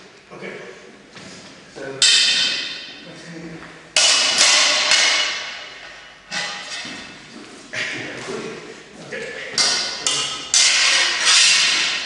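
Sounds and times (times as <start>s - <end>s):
metal swords clashing: 2.0s - 3.0s, 4.0s - 7.1s, 9.6s - 12.0s.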